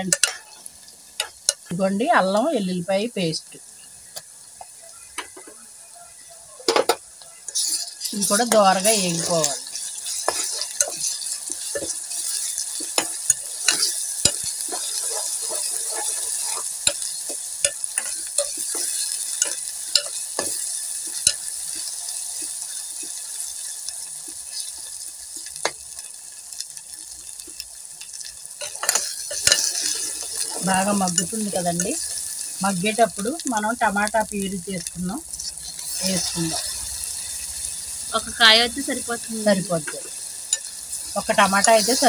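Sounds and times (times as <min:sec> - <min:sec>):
food sizzling in hot oil: 0:00.0 - 0:42.0
ladle scraping and knocking pot: 0:06.7 - 0:20.6.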